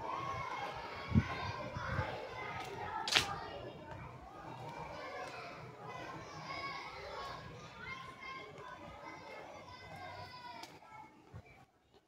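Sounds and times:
distant children chattering: 0.0s - 12.0s.

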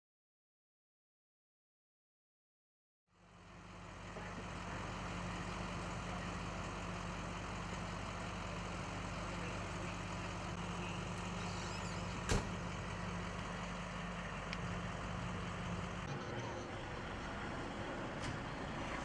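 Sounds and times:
vehicle engines idling: 3.2s - 19.0s
sharp knock: 12.3s - 12.6s.

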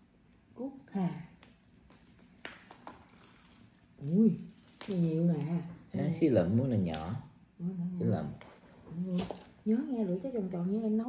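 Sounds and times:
fruit husk cracking: 1.4s - 7.3s.

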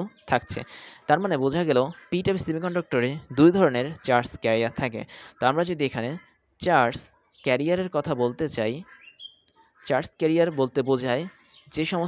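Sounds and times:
man speaking: 0.0s - 8.9s, 9.8s - 12.0s.

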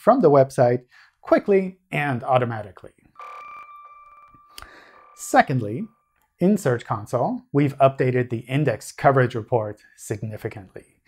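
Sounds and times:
speech: 0.0s - 2.9s, 5.2s - 11.0s
electronic transition tone: 3.2s - 6.2s.

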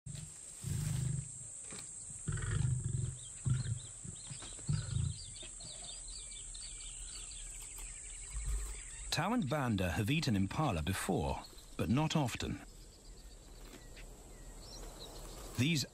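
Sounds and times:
faint bird chirps: 2.0s - 15.9s
lion growling: 2.2s - 5.4s.

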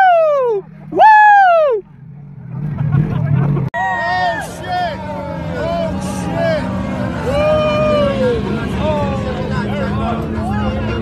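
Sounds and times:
quad bike engines droning: 0.0s - 11.0s
people shouting: 3.8s - 9.8s.

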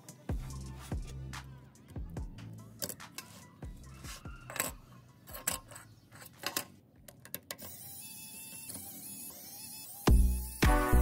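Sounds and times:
metal tools clicking and tapping: 2.7s - 7.7s.

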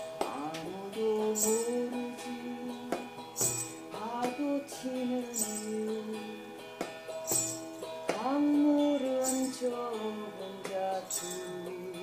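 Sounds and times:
woman singing gliding notes: 0.2s - 3.1s
light jingle: 1.2s - 2.3s, 3.3s - 6.3s, 7.1s - 11.9s.

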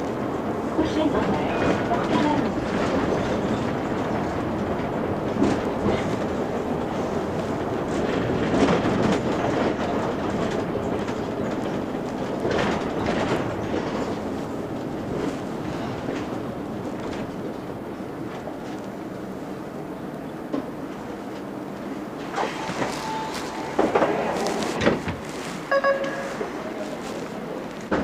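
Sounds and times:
bus engine and road rumble: 0.0s - 28.0s
body rattles and knocks: 1.7s - 17.6s.

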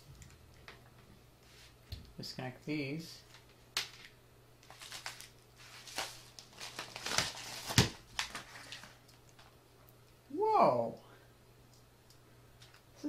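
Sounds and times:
packaging crinkling and rustling: 3.3s - 9.6s.

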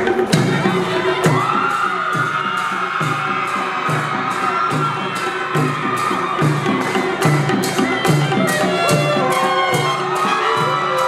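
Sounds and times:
band of drums cymbals and horns: 0.0s - 11.0s
steady drum beat: 0.0s - 11.0s.

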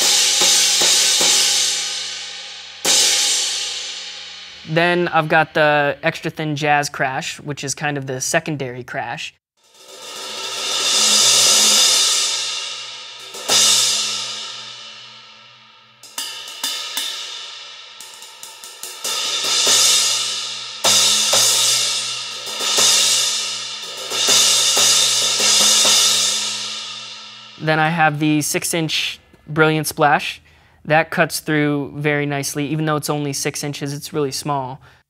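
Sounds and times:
crash cymbal struck with sticks: 0.0s - 5.4s, 9.6s - 28.7s.

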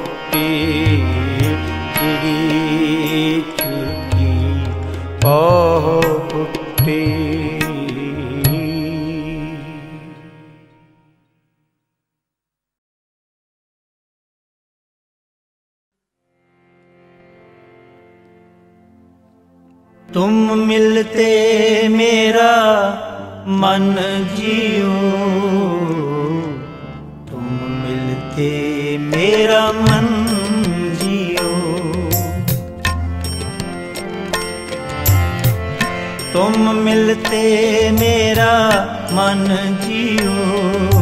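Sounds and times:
harmonium: 0.0s - 11.3s, 16.3s - 41.0s
ornamented devotional melody: 0.0s - 11.6s, 16.3s - 41.0s
tabla strokes: 29.1s - 41.0s.

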